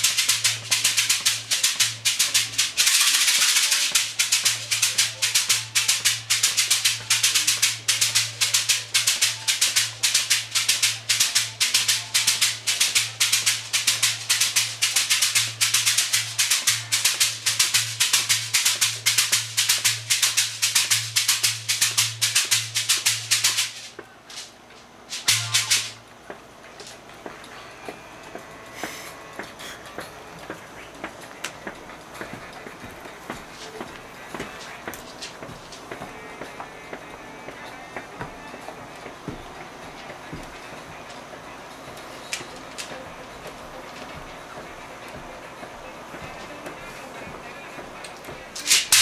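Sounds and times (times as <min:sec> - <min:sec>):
shaker played in steady rhythm: 0:00.0 - 0:49.0.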